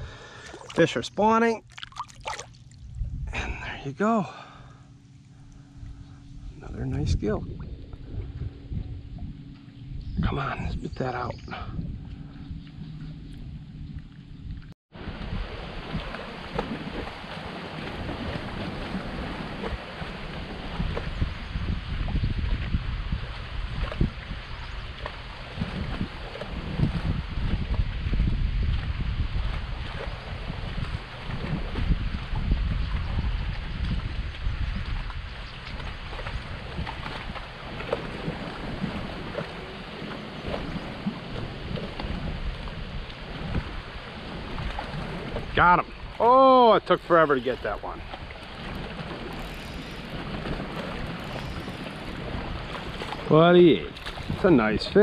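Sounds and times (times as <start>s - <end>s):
wind buffeting microphone: 2.7s - 3.8s, 5.3s - 55.0s.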